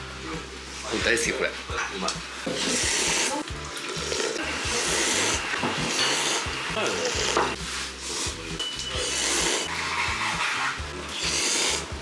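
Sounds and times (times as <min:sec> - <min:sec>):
people slurping noodles: 0:02.5 - 0:12.0.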